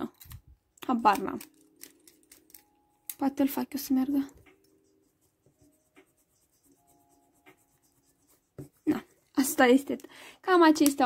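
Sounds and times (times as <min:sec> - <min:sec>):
pen scribbling on paper: 0:04.6 - 0:09.6.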